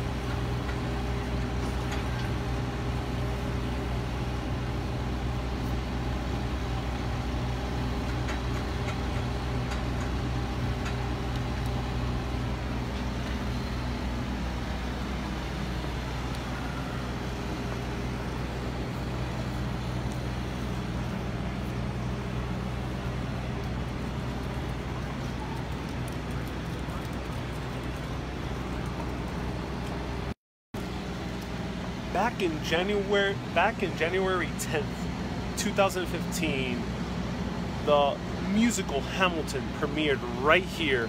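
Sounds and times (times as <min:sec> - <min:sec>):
street traffic noise: 0:00.0 - 0:41.0
vehicle engine humming: 0:00.0 - 0:41.0.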